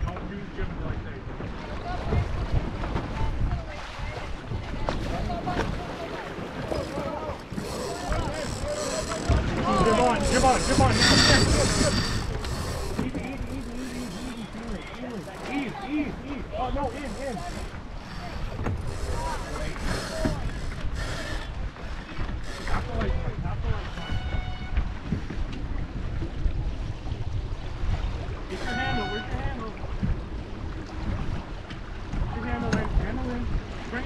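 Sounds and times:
water noise: 0.0 - 34.0
wind: 0.0 - 34.0
crew voices: 6.0 - 23.2, 28.5 - 29.3
mechanical rattle: 6.7 - 15.8, 22.5 - 22.9.

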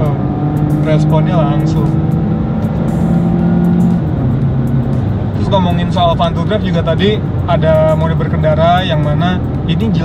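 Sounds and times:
background music: 0.0 - 10.0
car engine from inside cabin: 0.0 - 10.0
road noise: 0.0 - 10.0.

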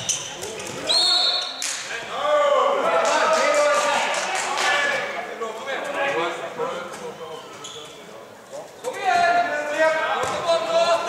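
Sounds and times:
handball bouncing on court: 10.2 - 10.6.

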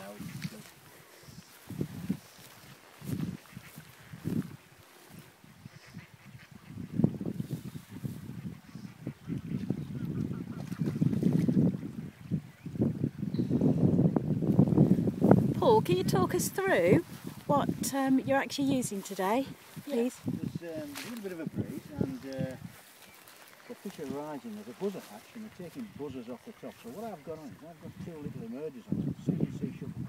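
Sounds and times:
wind buffeting microphone: 0.0 - 30.0.

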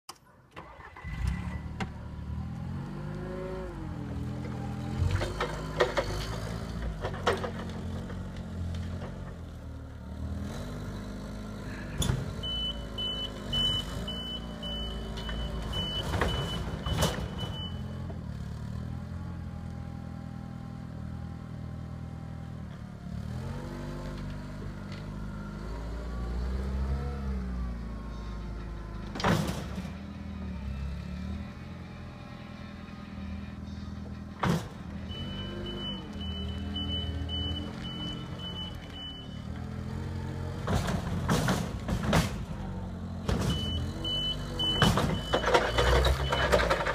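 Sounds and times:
pulsed warning beeper: 35.1 - 39.4.

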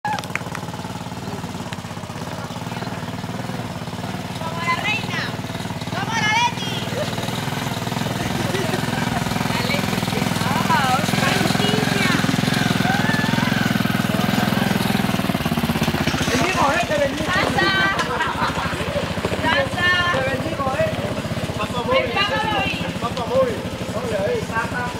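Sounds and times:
people shouting and cheering: 0.0 - 3.1, 4.5 - 7.6, 8.4 - 14.8
motor tricycle engine rumble: 0.0 - 24.9.

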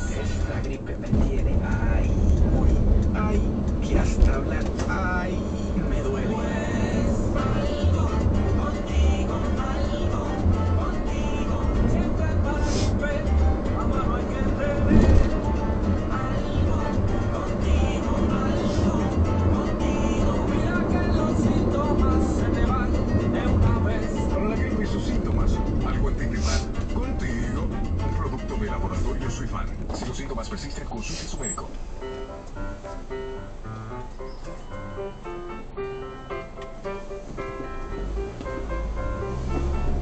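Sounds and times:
voice on car radio: 0.0 - 15.5, 20.0 - 31.9
engine and road rumble: 0.0 - 40.0
low driving noise: 0.0 - 40.0.

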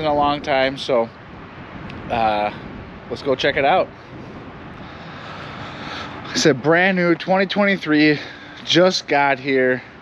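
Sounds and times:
distant engine rumble: 0.0 - 10.0.

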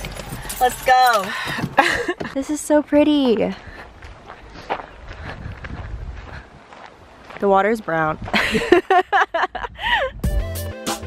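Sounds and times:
footsteps on a trail: 0.0 - 9.2.

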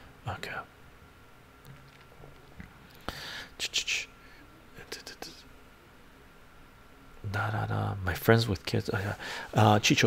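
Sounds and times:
man's whispered mouth sounds: 4.7 - 5.5.

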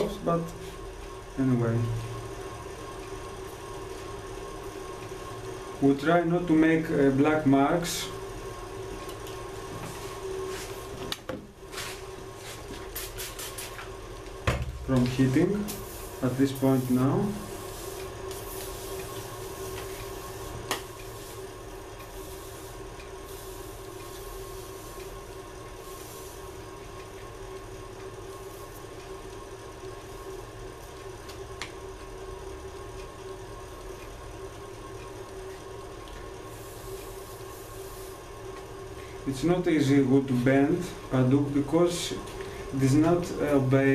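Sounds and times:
steady hum and hiss: 0.0 - 43.9.

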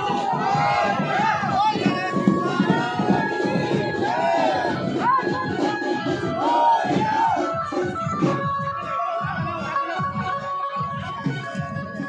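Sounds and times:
crowd of men shouting: 0.0 - 7.6.

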